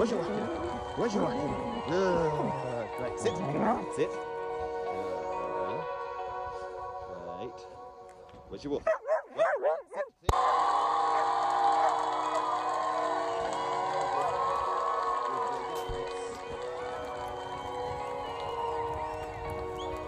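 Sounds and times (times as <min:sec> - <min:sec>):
music: 0:00.0 - 0:20.0
dog barking: 0:08.8 - 0:10.3.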